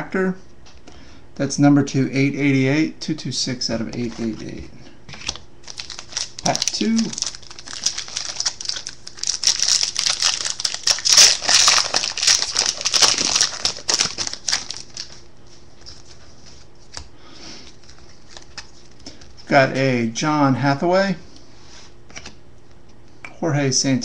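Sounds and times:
foil wrapper crinkling and tearing: 0:05.2 - 0:16.2, 0:17.6 - 0:19.3.

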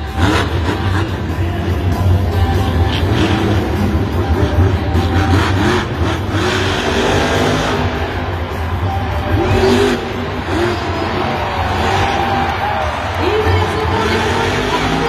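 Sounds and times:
arena music: 0:00.0 - 0:15.0
monster truck engine revving: 0:00.0 - 0:15.0.

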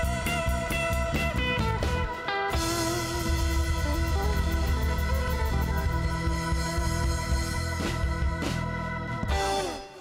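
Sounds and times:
bass guitar: 0:00.0 - 0:10.0
drum kit: 0:00.0 - 0:10.0
organ chords on keyboard: 0:00.0 - 0:10.0.

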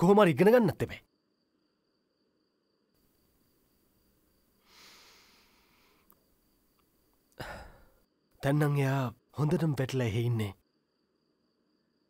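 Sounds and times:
man sighing: 0:07.4 - 0:08.0
man speaking: 0:08.4 - 0:10.6.

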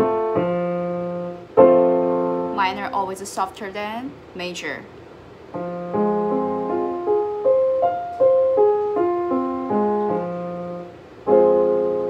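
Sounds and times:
piano arpeggio played softly: 0:00.0 - 0:03.0, 0:05.6 - 0:12.0.

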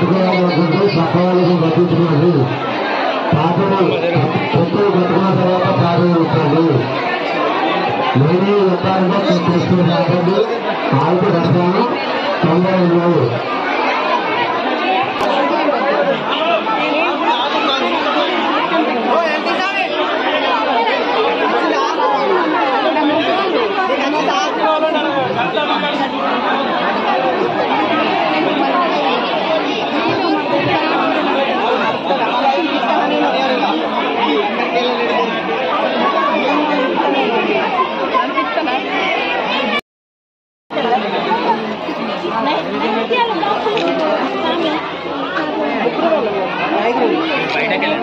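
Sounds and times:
crowd babble: 0:00.0 - 0:39.8, 0:40.7 - 0:48.0.

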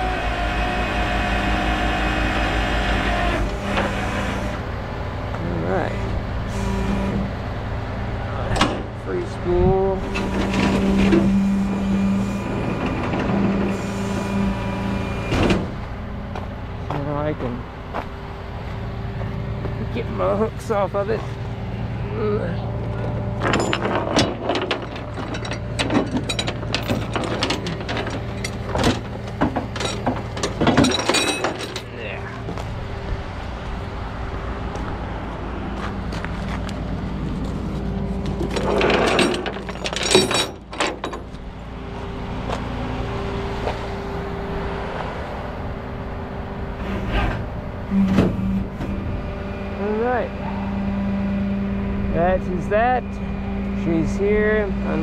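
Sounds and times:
short rising squeaks: 0:00.0 - 0:04.8, 0:10.0 - 0:15.8, 0:46.8 - 0:49.2
truck engine running: 0:00.0 - 0:55.0
chains clanking on steel deck: 0:23.4 - 0:32.1, 0:38.4 - 0:41.4.

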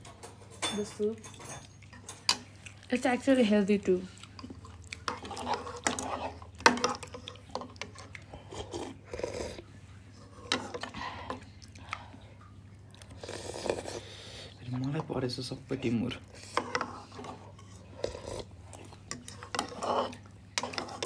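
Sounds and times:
spoons clicking and scraping bowls: 0:00.0 - 0:10.9, 0:15.8 - 0:21.0
chewing: 0:01.6 - 0:03.0, 0:04.0 - 0:14.2
slurping soup: 0:04.2 - 0:12.2, 0:12.9 - 0:14.6, 0:16.2 - 0:21.0.

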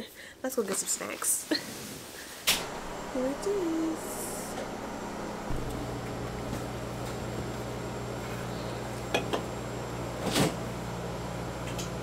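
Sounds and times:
appliance motor humming: 0:02.5 - 0:12.0.

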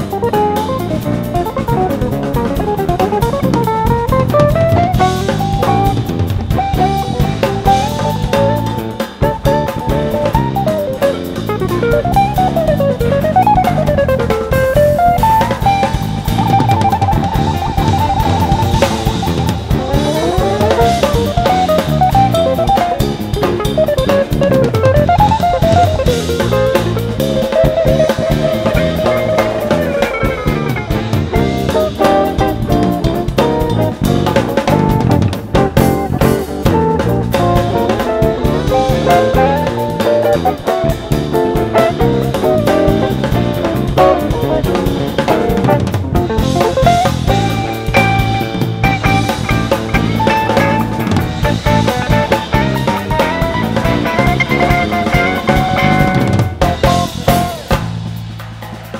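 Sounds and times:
electric guitar lead line: 0:00.0 - 0:58.1
jazz band playing: 0:00.0 - 0:58.9.

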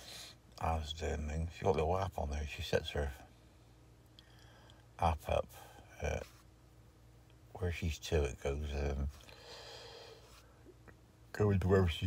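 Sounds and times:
man breathing out softly: 0:09.3 - 0:10.5.

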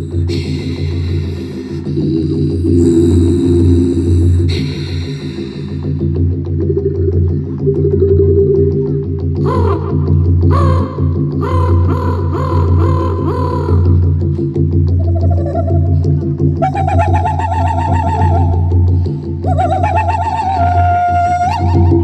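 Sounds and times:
woman throat singing: 0:00.0 - 0:06.8, 0:09.4 - 0:22.0
low drone: 0:00.0 - 0:22.0.

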